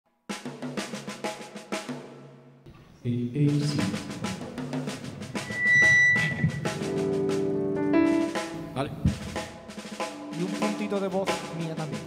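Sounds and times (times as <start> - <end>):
drum strokes with sticks: 3.4 - 12.0.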